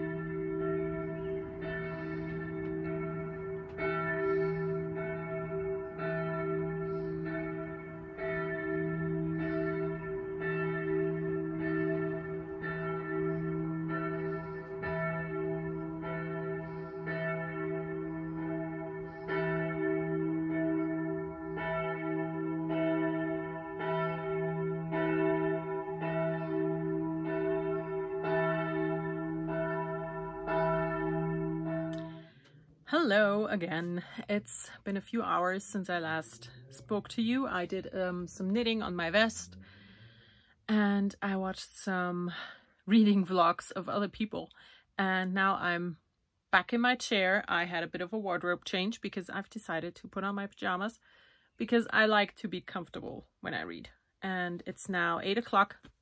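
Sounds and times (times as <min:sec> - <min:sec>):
church bells ringing: 0:00.0 - 0:40.4.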